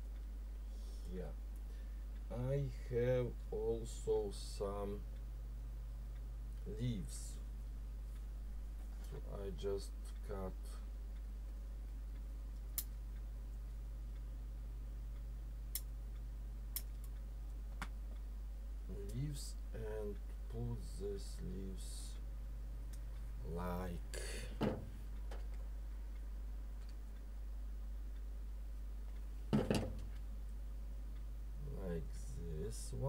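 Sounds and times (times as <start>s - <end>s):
low electrical hum: 0.0s - 33.0s
object knock and rattle: 29.5s - 30.0s.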